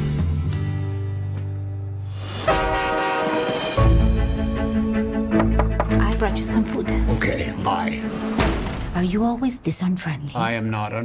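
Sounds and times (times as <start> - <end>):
loud horn-like blast: 2.3 - 4.2.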